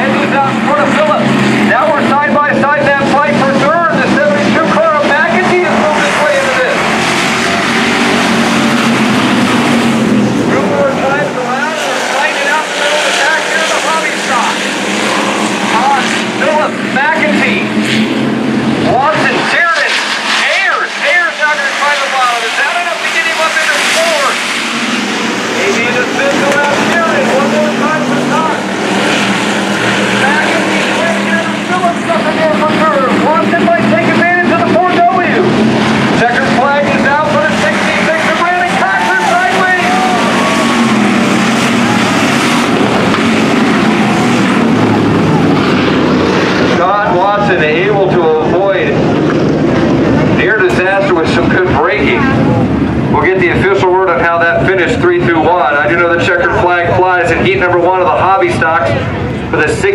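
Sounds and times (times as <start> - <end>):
race car engines revving: 0.0 - 59.9.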